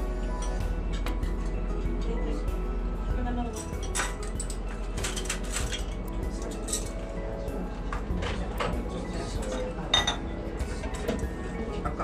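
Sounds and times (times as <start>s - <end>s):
background music: 0.0s - 12.0s
tableware clinking: 3.5s - 7.2s, 7.9s - 10.3s.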